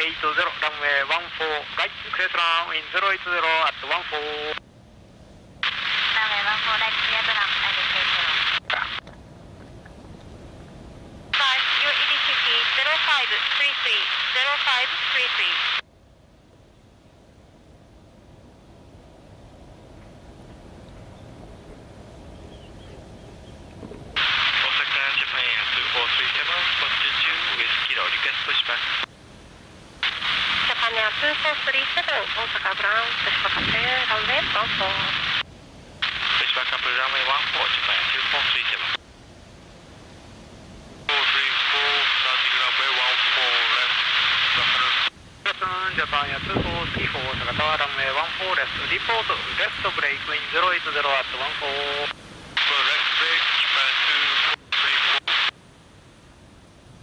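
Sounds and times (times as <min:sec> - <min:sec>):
radio voice transmissions: 0:00.0 - 0:04.6, 0:05.6 - 0:09.0, 0:11.4 - 0:15.8, 0:24.2 - 0:29.1, 0:30.0 - 0:35.4, 0:36.0 - 0:39.0, 0:41.1 - 0:55.5.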